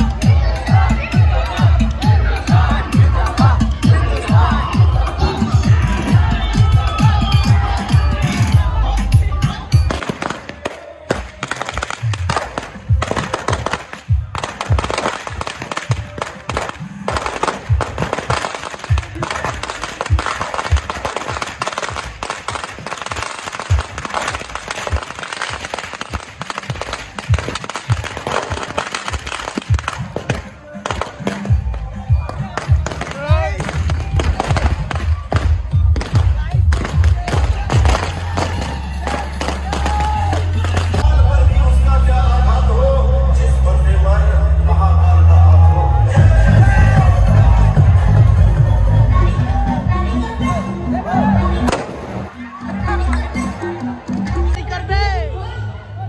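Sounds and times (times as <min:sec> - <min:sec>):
dance music with heavy bass: 0:00.0 - 0:10.4, 0:11.5 - 0:55.8
firecrackers popping: 0:09.8 - 0:41.1, 0:51.7 - 0:52.3.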